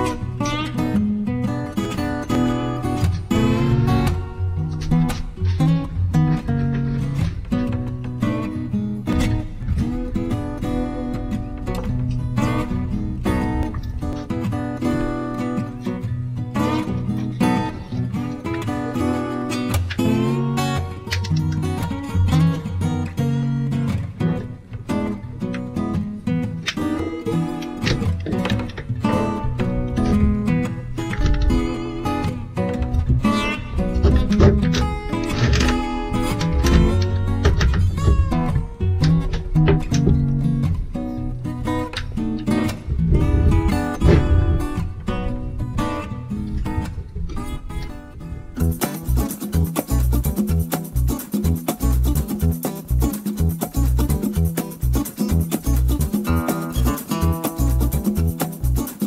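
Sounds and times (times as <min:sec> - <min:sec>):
strummed acoustic guitar music: 0:00.0 - 0:59.0.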